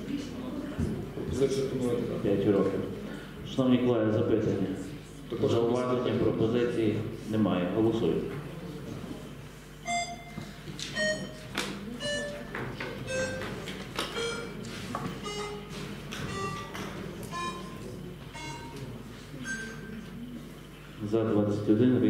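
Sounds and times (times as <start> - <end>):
short electronic tones: 9.8 - 10.4, 11.0 - 11.4, 13.1 - 13.4, 14.2 - 14.6, 15.2 - 16.7, 19.4 - 20.0.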